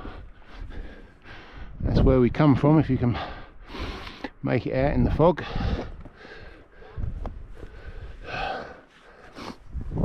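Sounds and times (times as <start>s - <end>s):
man breathing heavily: 0.0s - 1.8s, 3.0s - 4.4s, 5.3s - 9.9s.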